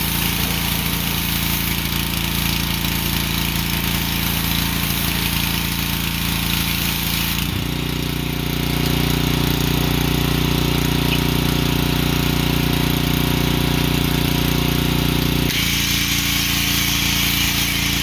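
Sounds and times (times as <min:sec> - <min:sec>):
water jet spraying hiss: 0:00.0 - 0:07.5, 0:15.5 - 0:18.0
pressure washer engine running: 0:00.0 - 0:18.0.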